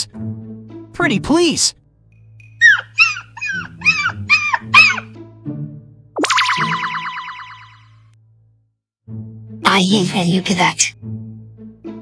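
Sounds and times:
light background music: 0:00.0 - 0:08.3, 0:09.0 - 0:12.0
cartoon dog whining: 0:02.6 - 0:05.2.

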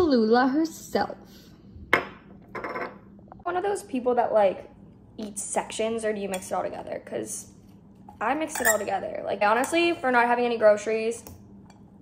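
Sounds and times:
glass bottle knocking on countertop: 0:01.9 - 0:03.0.

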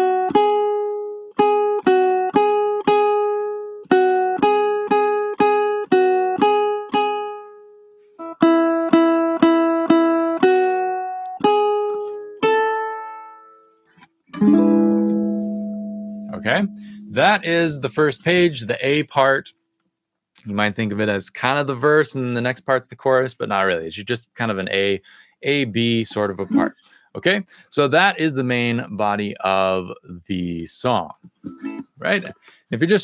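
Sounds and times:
ukulele melody: 0:00.0 - 0:18.6, 0:26.1 - 0:26.8, 0:31.4 - 0:32.3.

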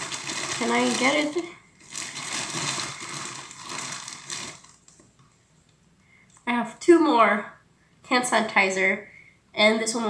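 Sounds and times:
plastic bottles rustling and clicking: 0:00.0 - 0:05.2.

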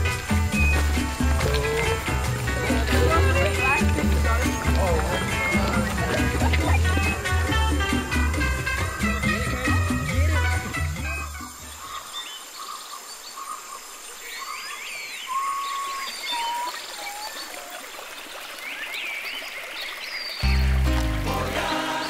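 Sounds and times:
music: 0:00.0 - 0:11.7, 0:20.4 - 0:22.0
birds chirping and whistling: 0:00.0 - 0:21.0
stream running over rocks: 0:00.0 - 0:22.0.

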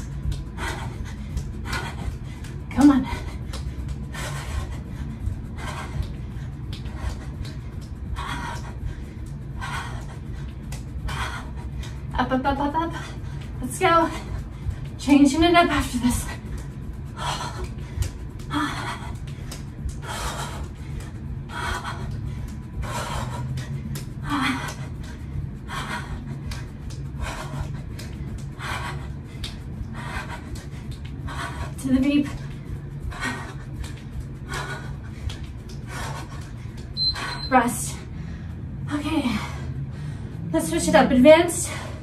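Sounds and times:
woman panting: 0:00.0 - 0:42.0.

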